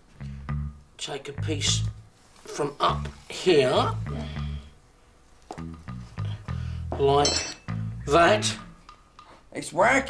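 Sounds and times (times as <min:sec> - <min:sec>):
background music with plucked bass: 0:00.0 - 0:02.1, 0:02.8 - 0:04.8, 0:05.5 - 0:08.8
short high clink: 0:07.2 - 0:07.7.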